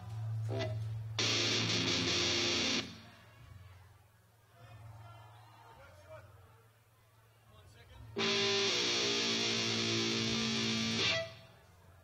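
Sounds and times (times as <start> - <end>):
distorted electric guitar chord: 1.2 - 3.0, 8.2 - 11.4
amplifier hum: 8.2 - 11.4.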